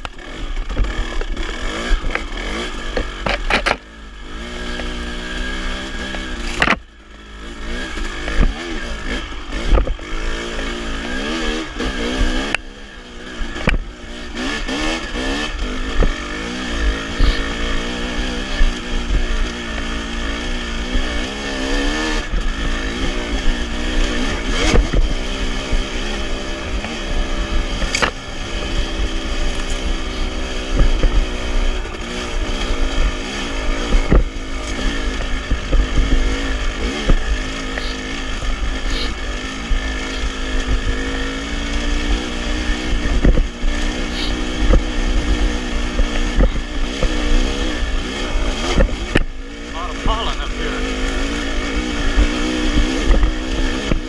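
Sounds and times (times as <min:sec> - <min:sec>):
dirt bike engine revving: 0:00.0 - 0:54.0
wind rumble on microphone: 0:42.3 - 0:49.4, 0:51.4 - 0:54.0.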